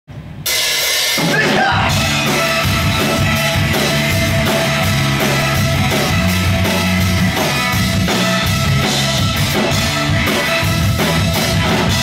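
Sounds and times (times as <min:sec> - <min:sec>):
drum kit with cymbals: 0:00.1 - 0:12.0
bass guitar: 0:01.2 - 0:12.0
electric guitar: 0:01.8 - 0:12.0.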